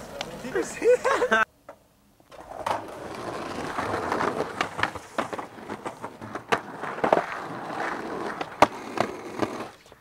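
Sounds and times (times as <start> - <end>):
skateboard wheels rolling on concrete: 0.0 - 10.0
skateboard clacks: 2.3 - 9.9.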